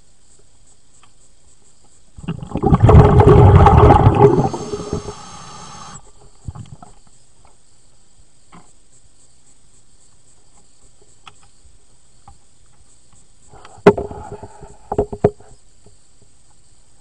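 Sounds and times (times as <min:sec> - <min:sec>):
air bubbling underwater: 0:02.2 - 0:06.0.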